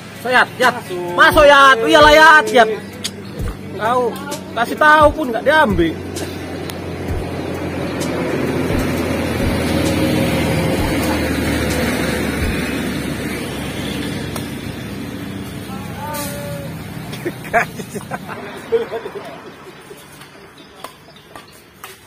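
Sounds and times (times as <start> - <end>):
vehicle passing by: 0.0 - 22.0.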